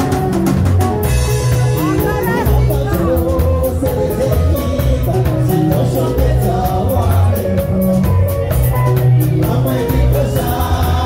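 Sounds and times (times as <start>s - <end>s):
drum kit cymbal beat: 0.0s - 11.0s
electric guitars and bass: 0.0s - 11.0s
man singing lead: 1.3s - 11.0s.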